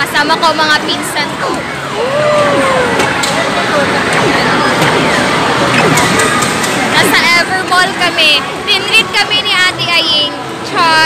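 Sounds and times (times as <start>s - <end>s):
arcade game machine electronic sounds: 0.7s - 8.6s.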